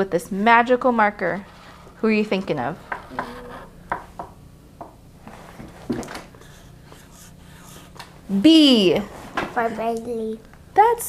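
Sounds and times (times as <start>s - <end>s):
room hum: 0.0s - 11.0s.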